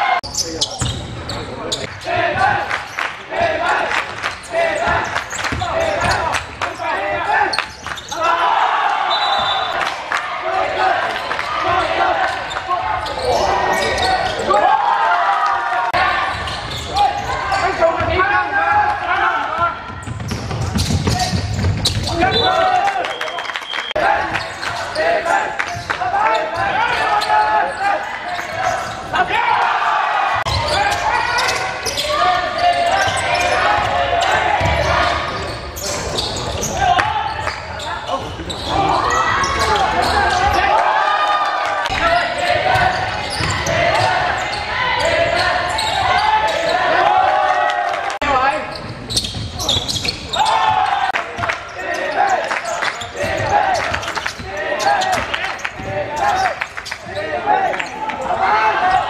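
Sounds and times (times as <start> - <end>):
players calling out: 0.0 - 59.0
basketball bouncing on court: 4.8 - 6.2, 19.6 - 22.3, 33.8 - 35.1, 42.6 - 44.4.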